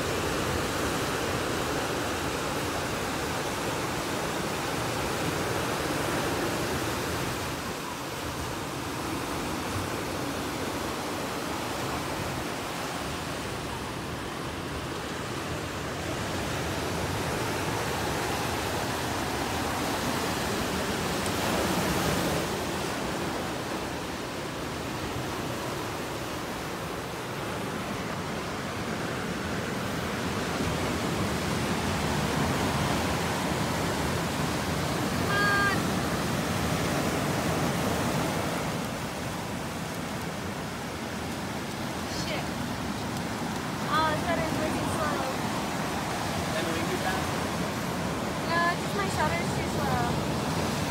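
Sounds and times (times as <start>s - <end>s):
ocean surf breaking on shore: 0.0s - 50.9s.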